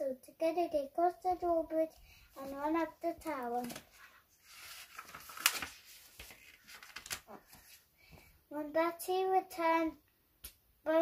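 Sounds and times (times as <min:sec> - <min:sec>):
book page turning: 0:02.4 - 0:07.8.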